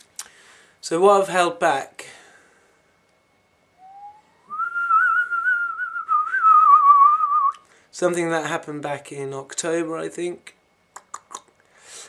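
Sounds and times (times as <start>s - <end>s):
person whistling: 3.8s - 7.6s.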